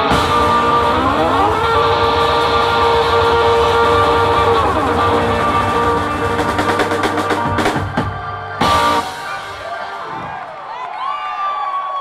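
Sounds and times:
organ chord: 0:00.0 - 0:10.1
live band with guitar and drums: 0:00.0 - 0:10.4
steady bass line: 0:00.0 - 0:10.4.

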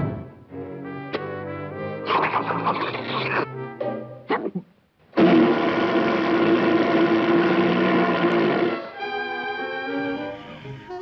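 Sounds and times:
orchestral cartoon music: 0:00.0 - 0:04.3, 0:08.3 - 0:11.0.

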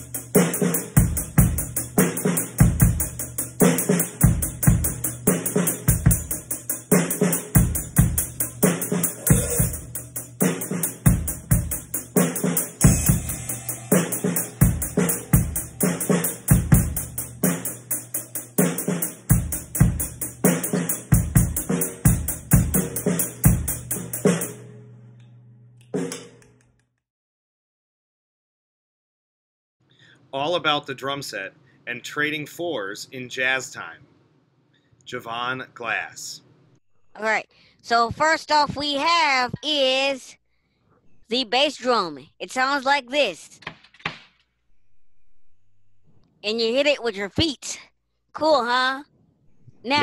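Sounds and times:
drum kit playing a beat: 0:00.0 - 0:24.7, 0:26.0 - 0:26.4.

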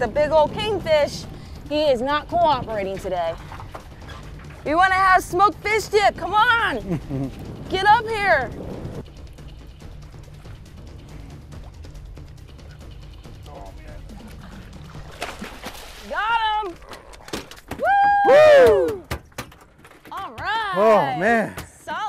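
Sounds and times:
boat engine idling: 0:00.0 - 0:15.2
fish splashing: 0:14.0 - 0:17.8
fish flopping on deck: 0:14.2 - 0:18.0
excited whoops: 0:17.7 - 0:19.1.

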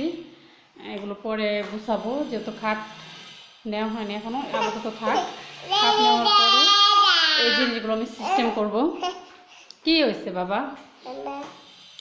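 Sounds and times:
toddler babbling: 0:04.4 - 0:09.4, 0:11.0 - 0:11.6.

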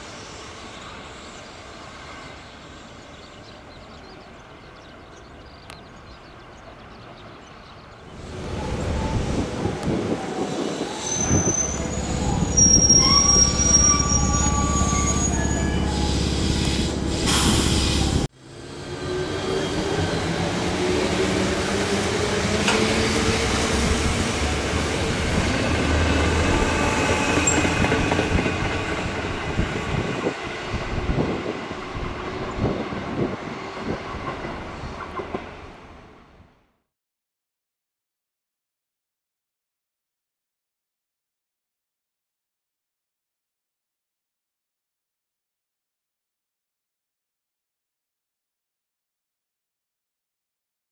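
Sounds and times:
train wheel and brake squeal: 0:10.4 - 0:18.2, 0:26.4 - 0:28.4.

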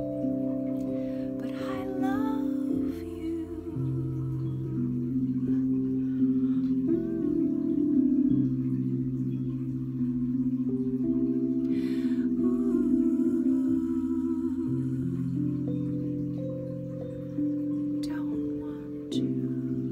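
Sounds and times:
slow keyboard chords: 0:00.0 - 0:19.9.

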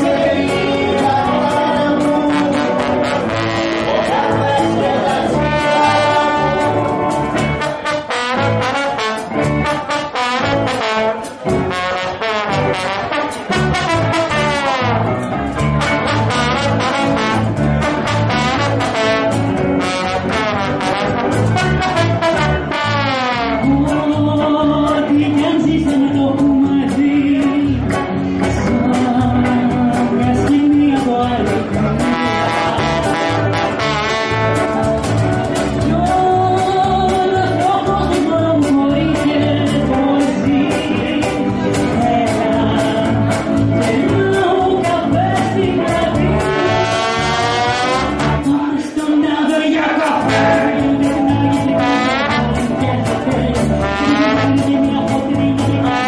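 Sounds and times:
brass instrument melody: 0:00.0 - 0:24.0, 0:31.5 - 0:35.7, 0:45.8 - 0:48.7, 0:50.0 - 0:54.9, 0:55.6 - 0:56.0
bass and drum beat: 0:00.0 - 0:56.0
live band playing: 0:00.0 - 0:56.0
woman singing: 0:23.4 - 0:27.9, 0:28.6 - 0:33.3, 0:35.8 - 0:56.0.

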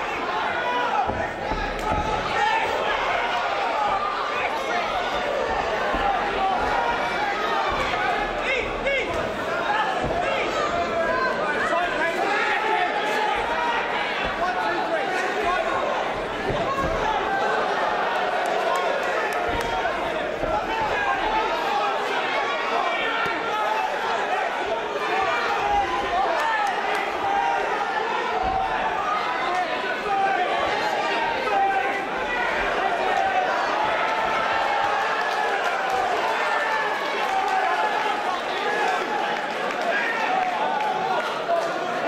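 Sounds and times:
spectators shouting: 0:00.0 - 0:42.0
dull thuds: 0:00.5 - 0:12.0, 0:12.6 - 0:18.5, 0:19.1 - 0:21.6.

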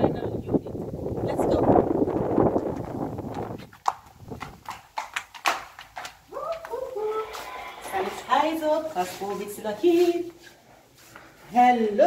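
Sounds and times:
voice-like sound: 0:06.6 - 0:08.6.

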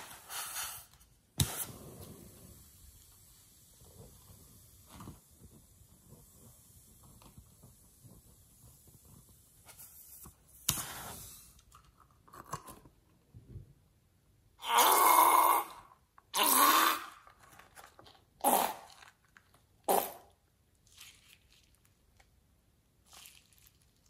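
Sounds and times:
slime squelching: 0:20.8 - 0:22.4.

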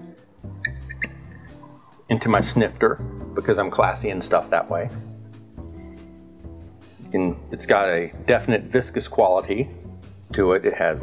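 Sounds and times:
quiet guitar music: 0:00.0 - 0:11.0
cork squeaking in bottle neck: 0:00.6 - 0:02.4.

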